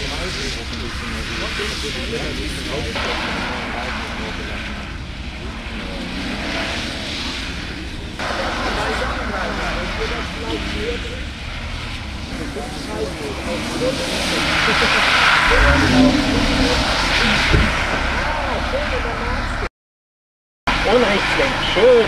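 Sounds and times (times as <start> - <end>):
car engine revving: 0.0 - 19.7
water spraying off tyres: 3.0 - 15.6.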